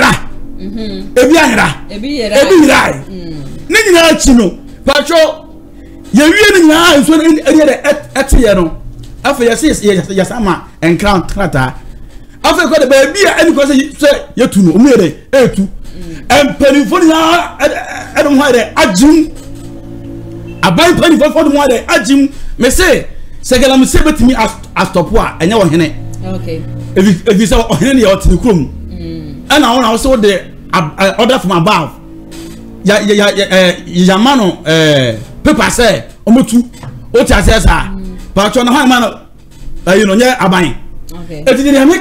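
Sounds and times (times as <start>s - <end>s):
man speaking excitedly: 0.0s - 0.3s, 1.2s - 3.1s, 3.7s - 5.4s, 6.2s - 11.7s, 12.4s - 15.7s, 16.3s - 19.3s, 20.6s - 26.0s, 27.0s - 28.7s, 29.5s - 31.9s, 41.4s - 42.0s
low steady hum: 0.0s - 42.0s.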